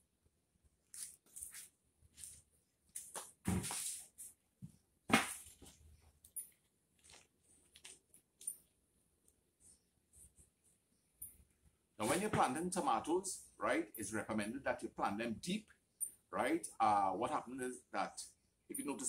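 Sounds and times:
plastic pots rustling: 0:05.2 - 0:08.6.

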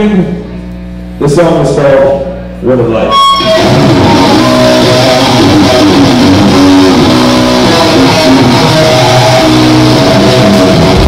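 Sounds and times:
metal band electric guitar and bass: 0:03.0 - 0:11.0.

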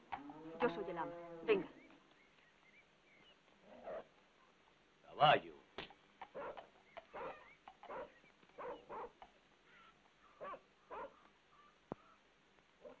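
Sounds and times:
dog barking faintly: 0:06.4 - 0:09.2, 0:10.4 - 0:11.2.

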